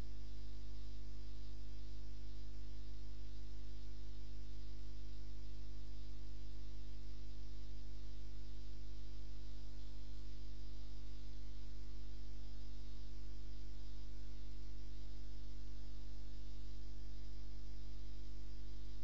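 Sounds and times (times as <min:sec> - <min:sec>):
electrical mains hum: 0:00.0 - 0:19.0
faint hiss: 0:00.0 - 0:19.0.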